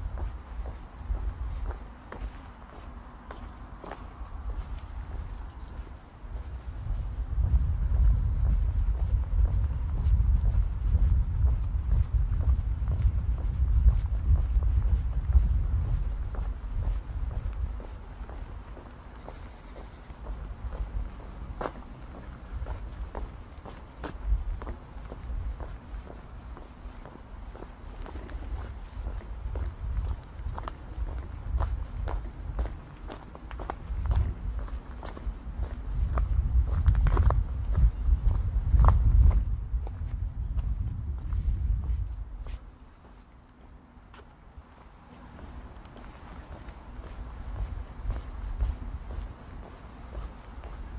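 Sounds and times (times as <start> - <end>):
footsteps walking outdoors: 0.0 - 50.9
low rumble: 6.4 - 18.6, 35.6 - 42.4.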